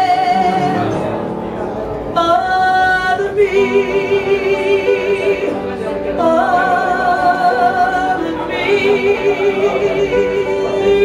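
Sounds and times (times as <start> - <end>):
woman singing into a microphone: 0.0 - 1.0, 2.1 - 11.0.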